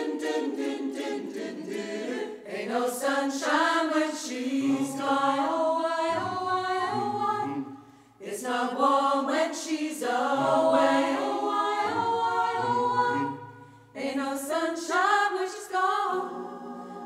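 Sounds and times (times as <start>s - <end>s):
mixed choir singing unaccompanied: 0.0s - 17.0s.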